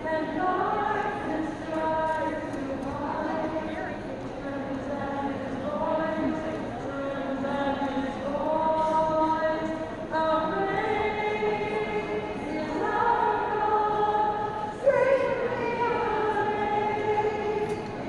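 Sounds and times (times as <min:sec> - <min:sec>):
women singing a slow hymn: 0:00.0 - 0:18.0.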